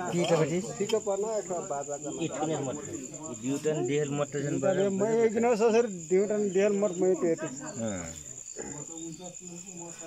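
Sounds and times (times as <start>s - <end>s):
crickets trilling: 0.0s - 10.0s
faint voices talking: 0.0s - 10.0s.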